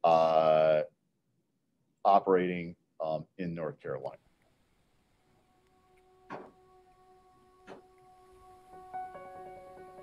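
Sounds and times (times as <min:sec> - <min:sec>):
soft new-age background music: 0:05.4 - 0:10.0.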